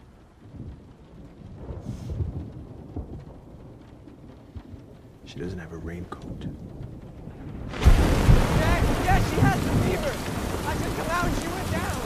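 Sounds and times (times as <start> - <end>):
faint rain hiss: 0.0 - 12.0
thunder rumbling: 0.0 - 12.0.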